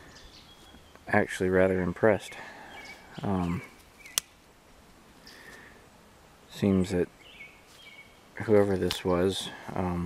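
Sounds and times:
faint bird chirp: 0:00.0 - 0:04.4, 0:05.2 - 0:08.6
sharp click: 0:04.0 - 0:04.3.

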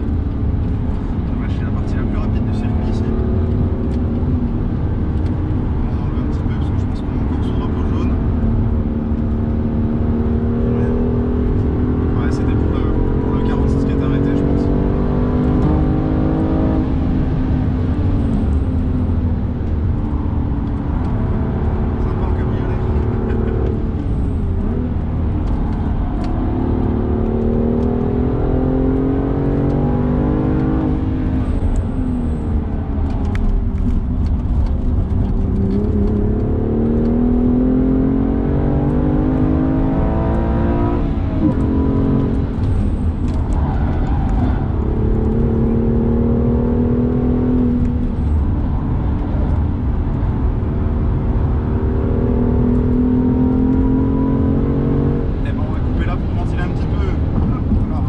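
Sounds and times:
car engine revving from cabin: 0:00.0 - 0:58.0.

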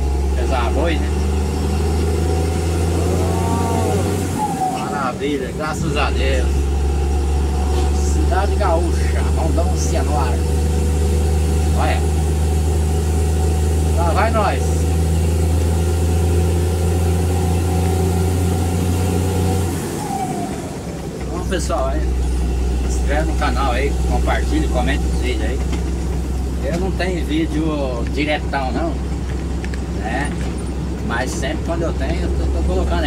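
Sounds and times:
road noise: 0:00.0 - 0:33.0
vehicle engine drone: 0:00.0 - 0:33.0
rising and falling tone: 0:01.7 - 0:05.0.

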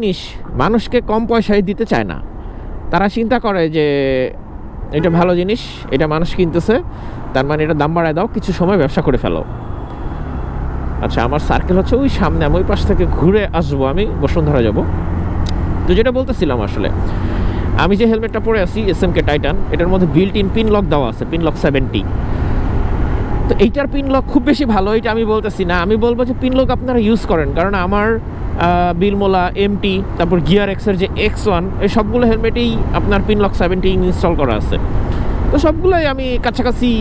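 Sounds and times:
man talking: 0:00.0 - 0:02.3, 0:02.9 - 0:09.5, 0:11.0 - 0:14.9, 0:15.9 - 0:22.1, 0:23.4 - 0:34.8, 0:35.5 - 0:37.0
road rumble: 0:00.0 - 0:37.0
wind: 0:00.0 - 0:37.0
motorcycle engine drone: 0:08.6 - 0:36.2.

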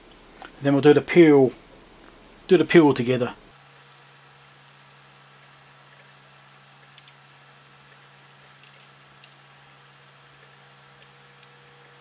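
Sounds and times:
cooling fan hum and hiss: 0:00.0 - 0:12.0.

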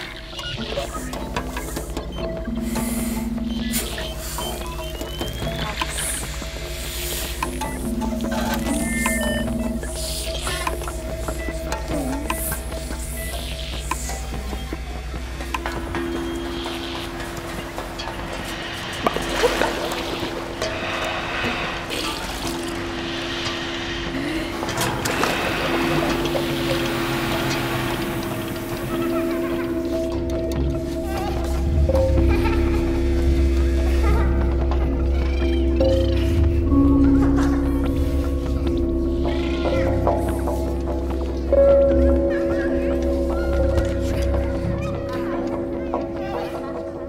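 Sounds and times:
ambient electronic music: 0:00.0 - 0:47.0
low pulsing hum: 0:00.0 - 0:47.0
water sloshing and splashing: 0:15.4 - 0:31.8.

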